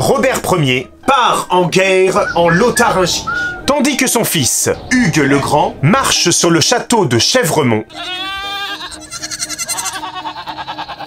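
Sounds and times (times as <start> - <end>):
goat bleating: 7.9 - 11.0.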